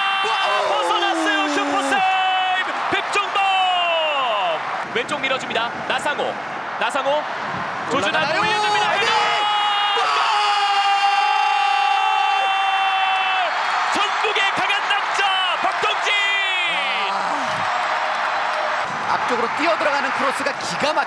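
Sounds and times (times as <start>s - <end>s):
commentator shouting: 0.0s - 4.0s, 8.0s - 10.4s
stadium crowd cheering: 0.0s - 21.0s.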